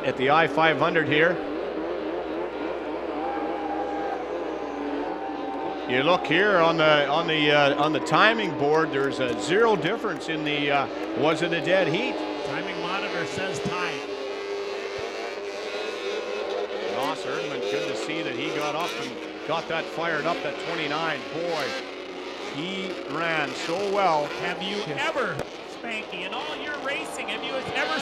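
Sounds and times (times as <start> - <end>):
snowmobile engines droning: 0.0 - 28.0.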